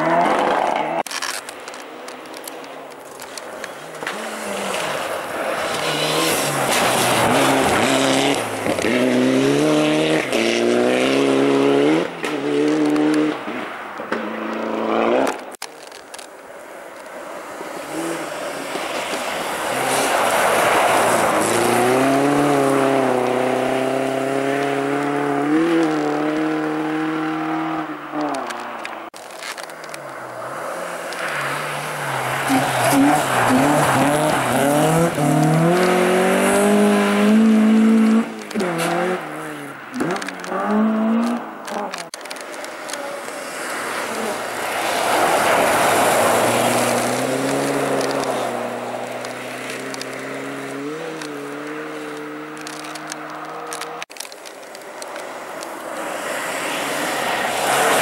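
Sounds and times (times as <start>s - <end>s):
rally car revving hard: 4.0s - 13.6s, 14.2s - 15.5s, 19.5s - 28.8s, 31.4s - 42.1s, 42.9s - 54.1s
car engine at high revs: 4.0s - 15.6s, 17.8s - 58.0s
rally car engine accelerating: 32.5s - 42.1s.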